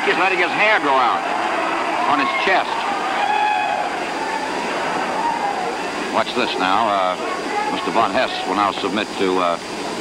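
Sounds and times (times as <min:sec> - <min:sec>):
arena crowd murmur: 0:00.0 - 0:08.8.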